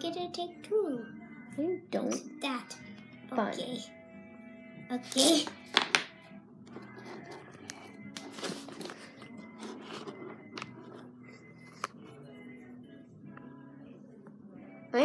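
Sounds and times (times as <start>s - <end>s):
faint background music: 0.0s - 15.0s.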